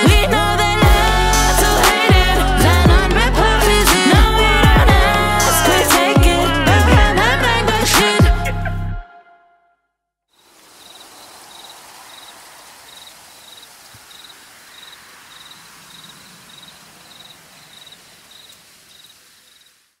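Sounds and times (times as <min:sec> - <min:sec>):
cricket chirping: 0:10.4 - 0:20.0
night ambience hiss: 0:10.4 - 0:20.0.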